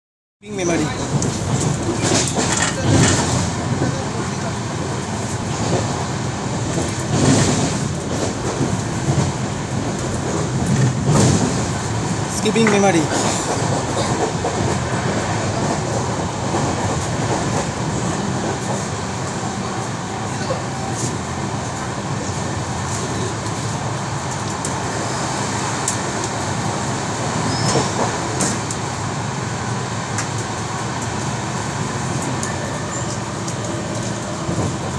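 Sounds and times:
train wheels on rails: 0.6 - 34.9.

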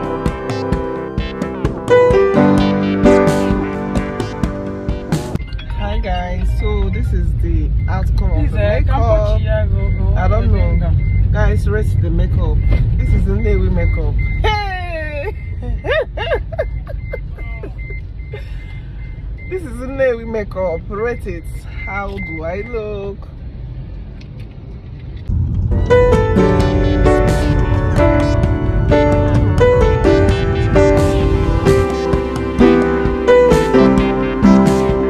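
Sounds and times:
piano music: 0.0 - 7.0, 25.5 - 35.0
rapid electronic beeping: 0.0 - 14.6, 15.3 - 19.6, 25.7 - 35.0
engine and road rumble: 0.0 - 35.0.

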